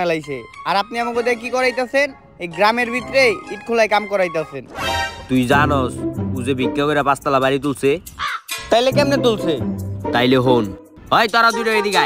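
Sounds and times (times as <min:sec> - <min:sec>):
background music: 0:00.0 - 0:12.0
crow-like cawing: 0:08.2 - 0:08.6.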